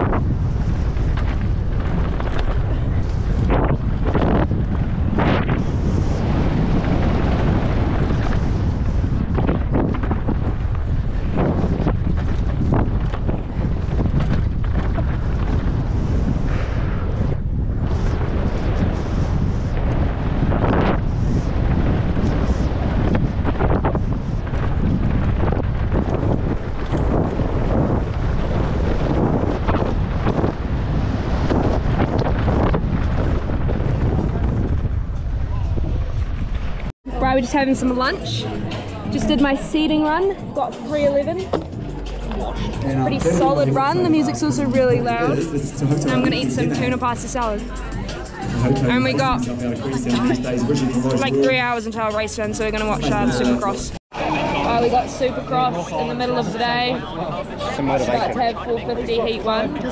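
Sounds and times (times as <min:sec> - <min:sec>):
wind rush on microphone: 0:00.0 - 0:59.9.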